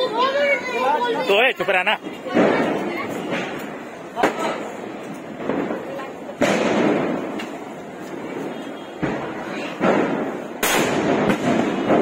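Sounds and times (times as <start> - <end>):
firework fuse burning: 1.3 - 12.0
firework burst: 2.3 - 12.0.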